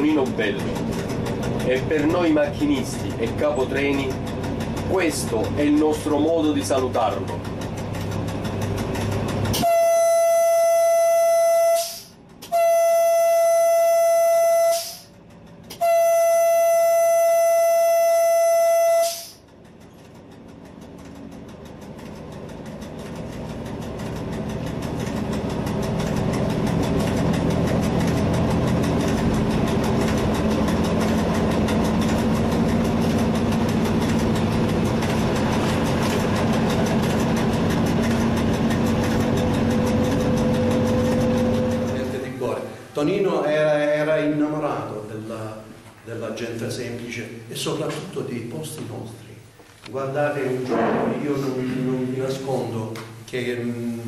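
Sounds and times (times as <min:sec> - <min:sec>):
train running drone: 0:00.0 - 0:44.0
train horn blasts: 0:09.5 - 0:15.1, 0:15.7 - 0:19.4.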